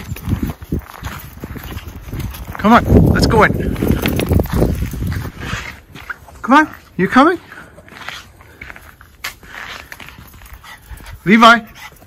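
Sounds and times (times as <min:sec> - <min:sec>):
footsteps crunching on frozen ground: 0:00.0 - 0:12.0.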